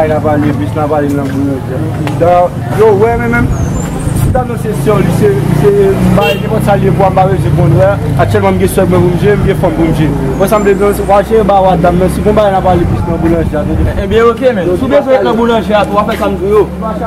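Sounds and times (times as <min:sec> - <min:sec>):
man talking: 0:00.0 - 0:03.6, 0:04.2 - 0:17.0.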